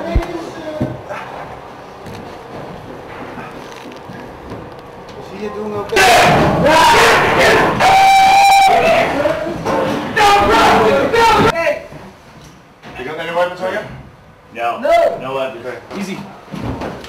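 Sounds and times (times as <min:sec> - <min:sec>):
room noise: 0:00.0 - 0:17.0
loud shouting and cries: 0:05.9 - 0:11.6.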